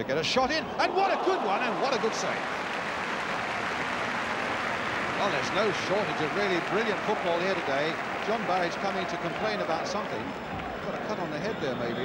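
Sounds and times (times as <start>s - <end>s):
stadium crowd cheering: 0.4s - 12.0s.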